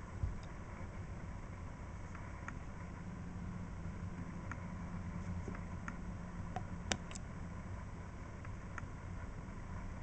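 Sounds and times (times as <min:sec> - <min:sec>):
low background hum: 0:00.0 - 0:10.0
thin steady whine: 0:00.0 - 0:10.0.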